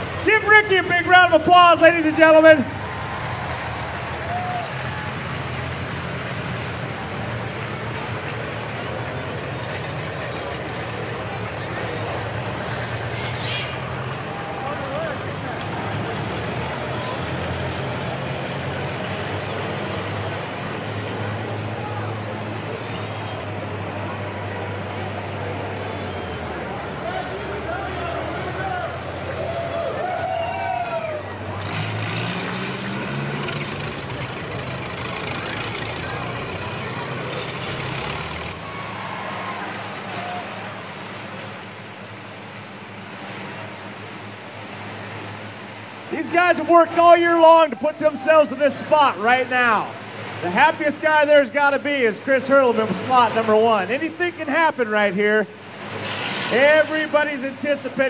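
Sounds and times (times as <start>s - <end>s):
car engines running: 0.0s - 58.0s
crowd voices: 0.0s - 58.0s
engine revving: 31.3s - 38.9s.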